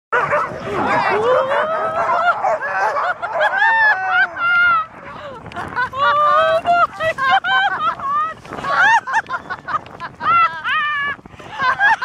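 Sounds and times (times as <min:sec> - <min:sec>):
sled dogs yelping and barking: 0:00.2 - 0:12.0.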